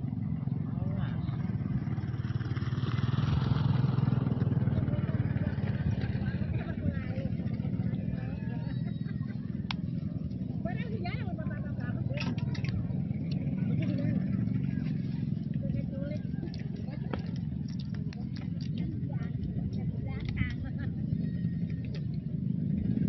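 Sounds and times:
low outdoor rumble: 0:00.0 - 0:23.0.

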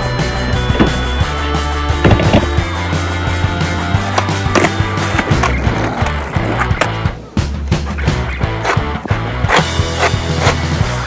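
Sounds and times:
music with steady beat: 0:00.0 - 0:05.4
skateboard wheels rolling: 0:00.4 - 0:11.0
skateboard clacks: 0:00.6 - 0:01.3, 0:02.0 - 0:02.7, 0:04.0 - 0:07.2, 0:07.8 - 0:11.0.

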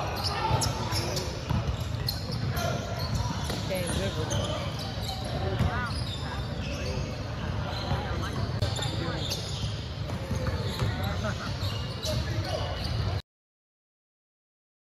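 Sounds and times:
sneaker squeaks: 0:00.0 - 0:13.2
spectators talking: 0:00.0 - 0:13.2.

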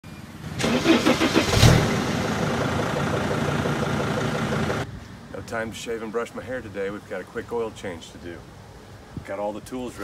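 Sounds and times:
diesel engine cranking and idling: 0:00.5 - 0:04.9.

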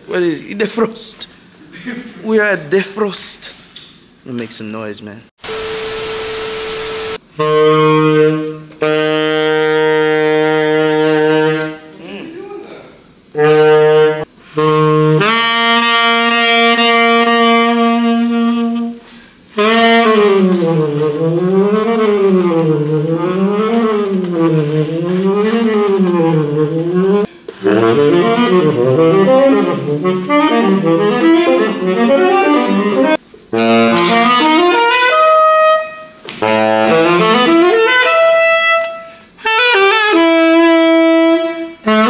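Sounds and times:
tenor saxophone playing: 0:05.5 - 0:12.4, 0:13.3 - 0:42.0.

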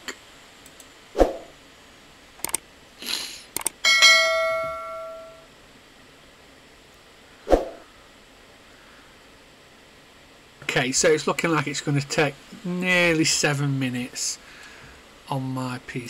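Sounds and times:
short swish: 0:01.2 - 0:01.5, 0:07.5 - 0:07.8
clicks: 0:02.4 - 0:02.6, 0:03.5 - 0:03.8
bell chime: 0:03.9 - 0:05.4.

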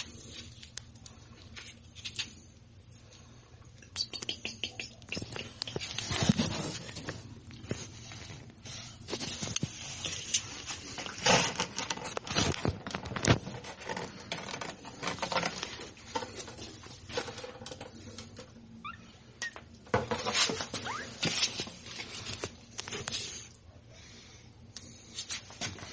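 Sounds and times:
handling scrapes and knocks: 0:09.0 - 0:18.5, 0:19.9 - 0:23.4.

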